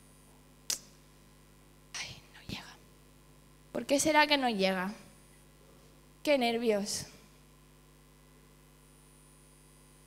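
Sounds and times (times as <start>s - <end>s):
woman whispering into microphone: 1.9s - 2.9s.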